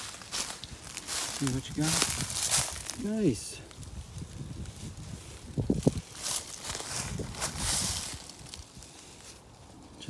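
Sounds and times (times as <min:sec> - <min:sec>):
footsteps crunching dry leaves: 0:00.0 - 0:10.0.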